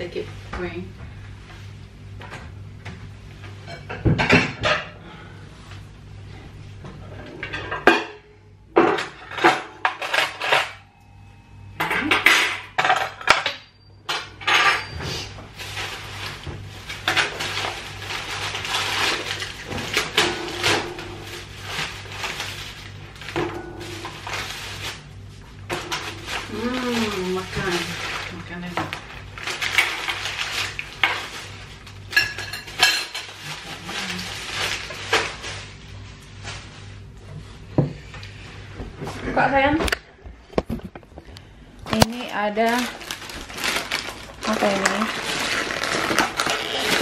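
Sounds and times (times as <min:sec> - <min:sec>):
plastic bag rustling: 0:15.2 - 0:37.6, 0:41.9 - 0:47.0.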